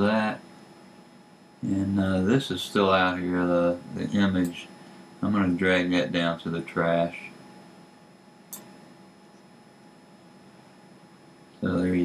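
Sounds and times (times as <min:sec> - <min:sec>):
faint room tone hiss: 0:00.0 - 0:12.0
faint steady hums: 0:00.0 - 0:12.0.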